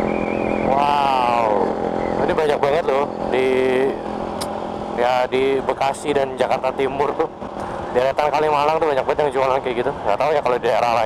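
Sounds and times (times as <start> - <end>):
motorcycle engine hum: 0.0 - 11.0.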